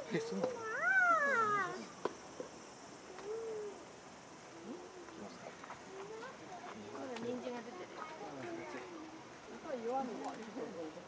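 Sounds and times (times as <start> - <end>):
high-pitched voice crying out: 0.6 - 1.8.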